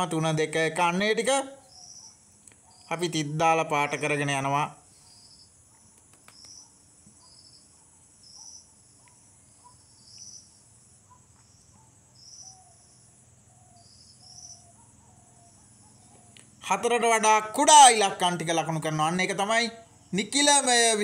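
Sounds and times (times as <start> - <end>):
marker squeaking on whiteboard: 5.7 - 7.4.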